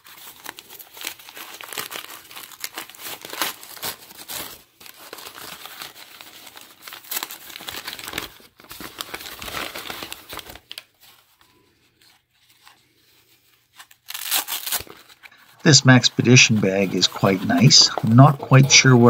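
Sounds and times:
packing paper crinkling: 0.0s - 19.0s.

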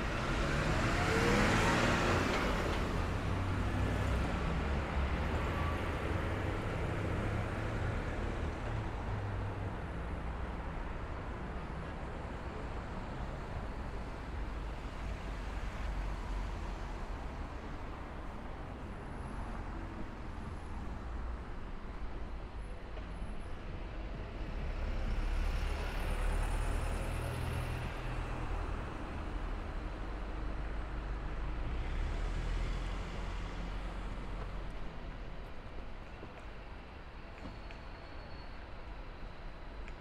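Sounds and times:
road traffic rumble: 0.0s - 40.0s.

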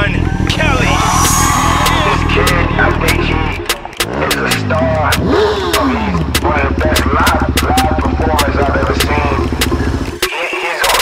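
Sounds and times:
voices: 0.0s - 11.0s
motorcycle engines idling: 4.2s - 10.2s.

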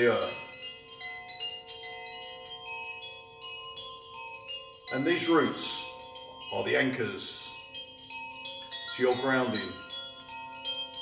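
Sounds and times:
metal chimes tinkling: 0.0s - 11.0s.

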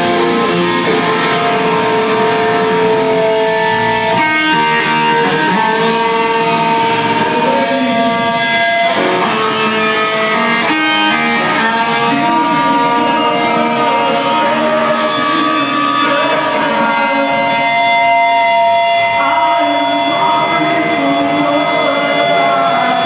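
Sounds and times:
hardcore band playing live: 0.0s - 23.0s
loud electric guitar chords: 0.0s - 23.0s.

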